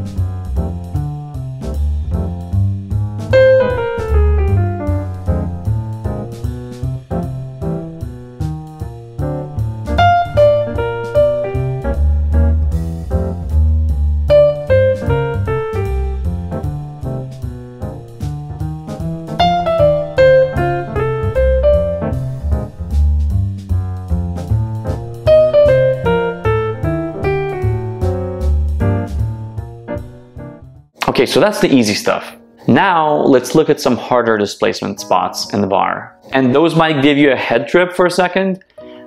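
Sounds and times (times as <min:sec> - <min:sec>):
steady ticking beat: 0:00.0 - 0:30.8
jazz piano: 0:00.0 - 0:31.0.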